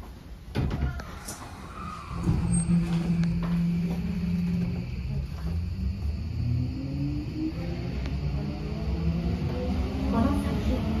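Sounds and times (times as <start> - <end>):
subway train motor whining: 1.0 - 11.0.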